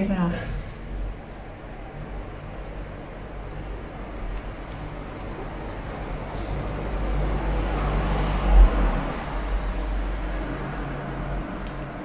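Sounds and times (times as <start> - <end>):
faint hum: 0.0 - 12.0.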